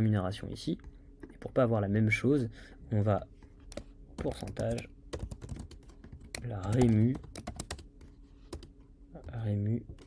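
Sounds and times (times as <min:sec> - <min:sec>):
typing on computer keyboard: 0:03.7 - 0:09.4.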